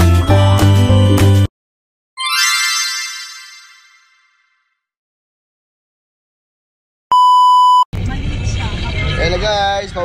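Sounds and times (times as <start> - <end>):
high test-tone beep: 7.1 - 7.9.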